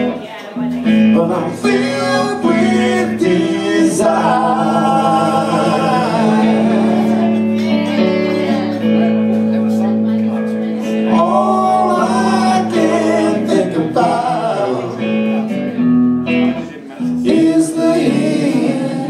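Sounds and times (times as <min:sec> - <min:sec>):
electric guitars: 0:00.0 - 0:19.0.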